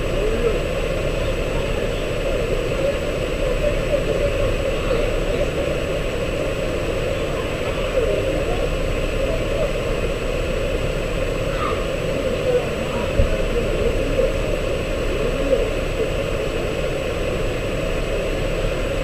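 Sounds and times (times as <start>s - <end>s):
faint wavering voices: 0.0s - 19.0s
muffled engine idling: 0.0s - 19.0s.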